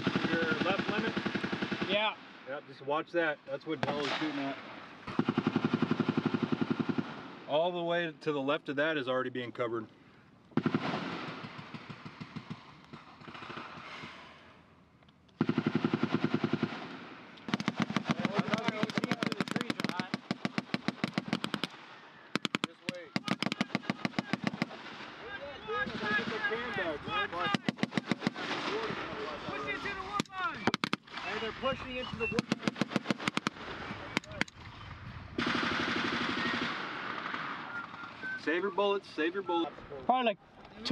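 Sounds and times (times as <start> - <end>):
machine-gun fire: 0.0 - 2.1, 3.8 - 7.5, 10.6 - 13.9, 15.4 - 25.1, 27.4 - 29.3, 30.6 - 31.2, 32.4 - 33.9, 35.4 - 38.1.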